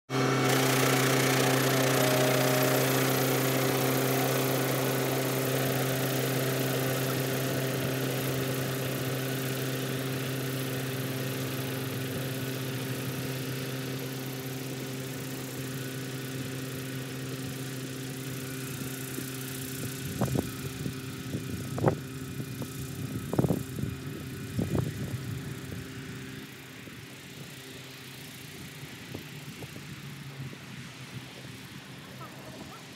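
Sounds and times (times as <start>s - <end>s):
tractor engine running: 0.1s - 32.9s.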